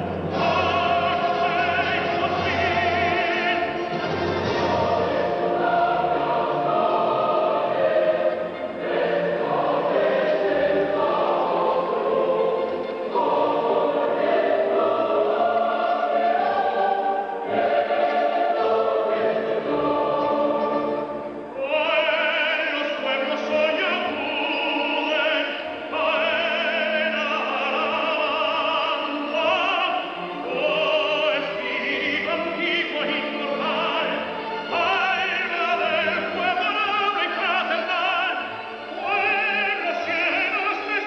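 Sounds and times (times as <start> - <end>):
large choir singing held notes: 0.0 - 41.0.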